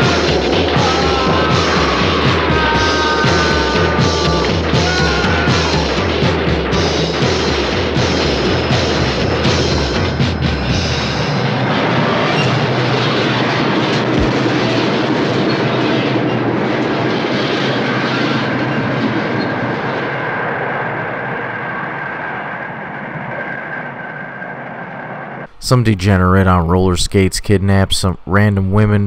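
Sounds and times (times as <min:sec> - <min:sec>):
subway train rumbling past: 0:00.0 - 0:26.7.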